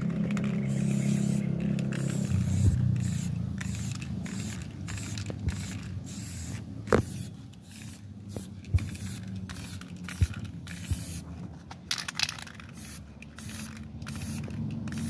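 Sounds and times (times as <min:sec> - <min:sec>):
aerosol spray hissing: 0:00.7 - 0:11.2.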